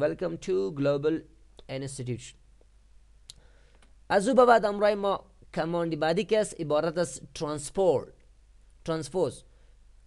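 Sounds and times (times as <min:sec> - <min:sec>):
person speaking: 0:00.0 - 0:09.6.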